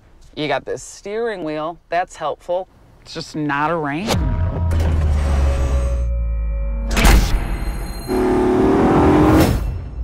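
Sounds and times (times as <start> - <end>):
car engine revving: 8.1 - 9.6.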